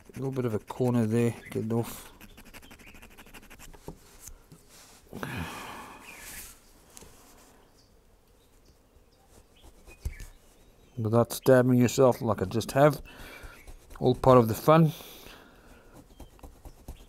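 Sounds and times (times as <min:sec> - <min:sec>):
needle file rasping: 0:00.0 - 0:04.3, 0:13.0 - 0:14.5, 0:15.7 - 0:17.0.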